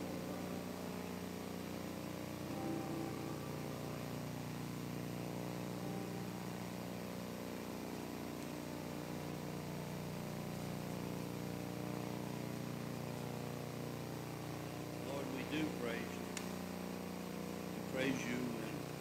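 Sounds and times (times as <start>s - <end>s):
faint instrumental music: 0.0s - 8.5s
low room hum: 0.0s - 19.0s.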